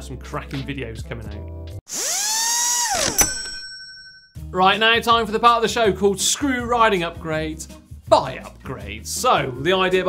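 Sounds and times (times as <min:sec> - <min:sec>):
electric drill spinning: 0:01.9 - 0:03.7
ringing ding: 0:02.9 - 0:04.4.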